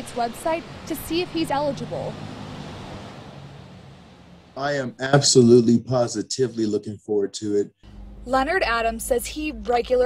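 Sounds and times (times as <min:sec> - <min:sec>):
tyres on wet road: 0:00.0 - 0:05.5.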